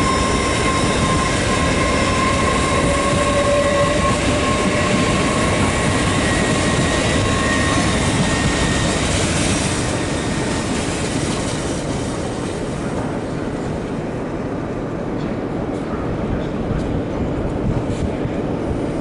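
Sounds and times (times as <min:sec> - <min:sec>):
high train whine: 0:00.0 - 0:19.0
train wheels rumbling on rail: 0:00.0 - 0:19.0.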